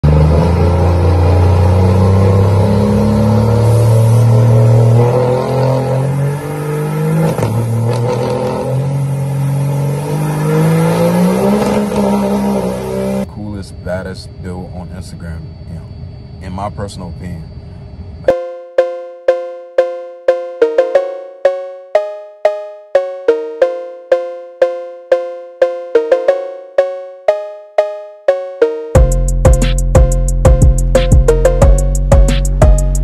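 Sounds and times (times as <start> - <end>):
diesel engine revving: 0.0 - 13.6
spinning tyres hissing: 0.1 - 13.4
man talking: 13.2 - 17.5.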